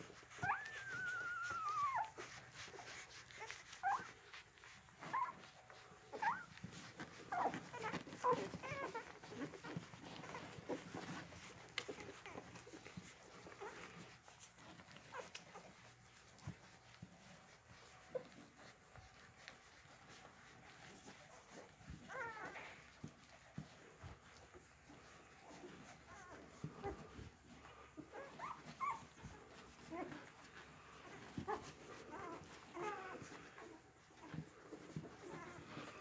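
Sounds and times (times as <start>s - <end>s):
puppies squeaking and whimpering: 0.0s - 36.0s.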